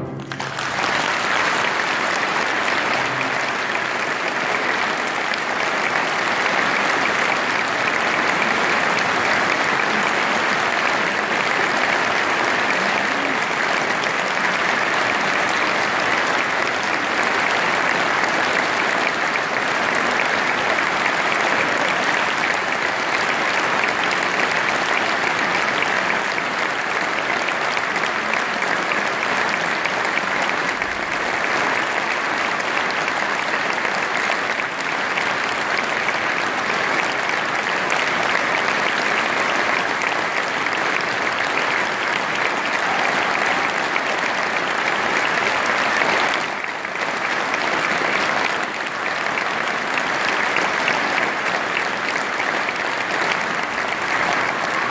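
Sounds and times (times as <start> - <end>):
audience applauding: 0.0 - 54.9.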